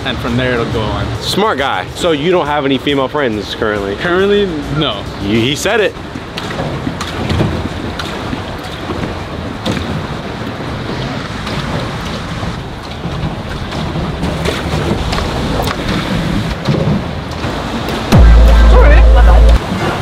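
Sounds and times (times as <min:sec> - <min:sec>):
water moving around boat: 0:00.0 - 0:20.0.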